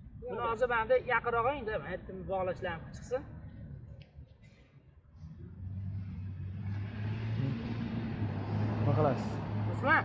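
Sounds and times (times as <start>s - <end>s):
tyre and road noise: 0.0s - 10.0s
vehicle engine hum: 1.8s - 10.0s.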